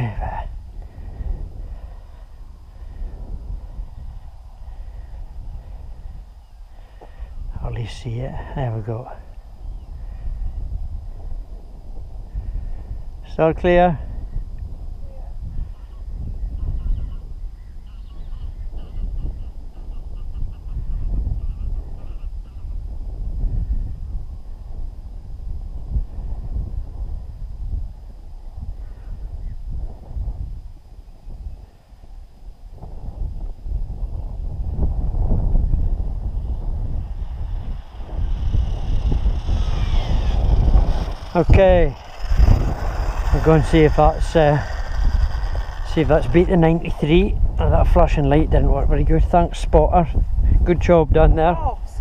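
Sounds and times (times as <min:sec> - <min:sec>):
wind gusting on microphone: 0:00.0 - 0:52.0
electric motor whine: 0:34.8 - 0:47.6.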